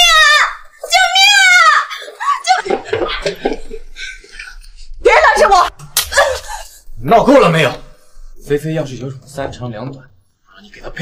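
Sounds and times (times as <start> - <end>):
woman shouting: 0.0 - 2.7, 5.0 - 6.4
hand slapping a face: 5.8 - 6.3.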